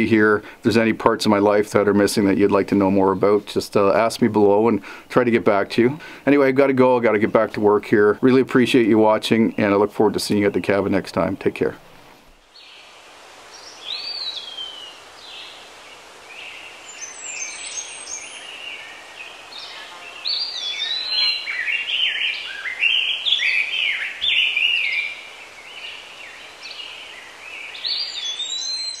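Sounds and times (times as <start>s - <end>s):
birds singing: 5.4s - 11.4s, 12.5s - 12.9s, 13.5s - 29.0s.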